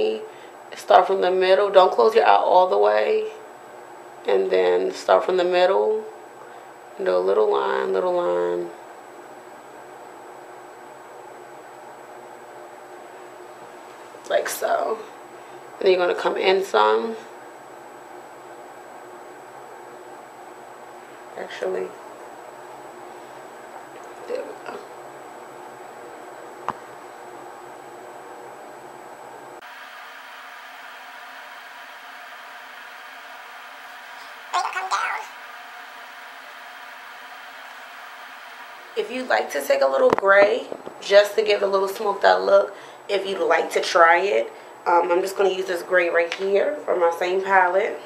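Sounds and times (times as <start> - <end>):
faint high whine: 0.0 - 44.8
low room noise hiss: 0.0 - 48.0.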